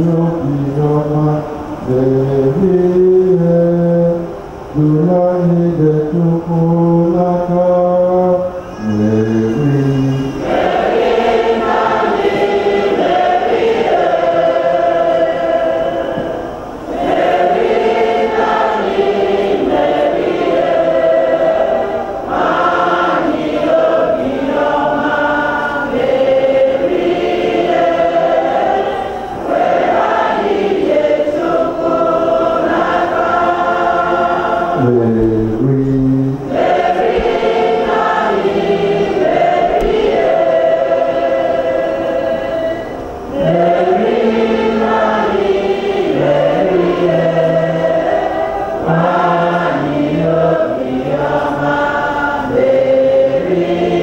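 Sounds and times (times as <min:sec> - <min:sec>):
voices singing a hymn: 0:00.0 - 0:54.0.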